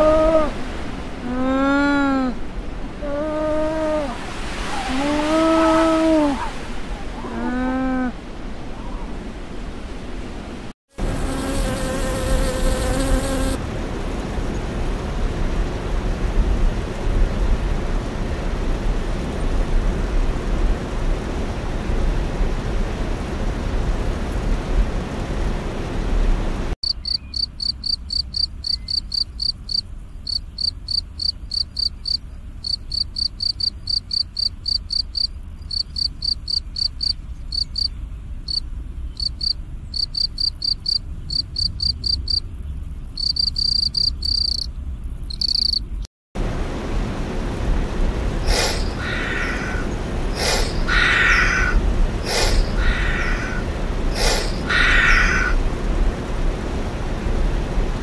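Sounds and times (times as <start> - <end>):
bee buzzing: 11.0 - 13.6
cricket chirping: 26.8 - 46.1.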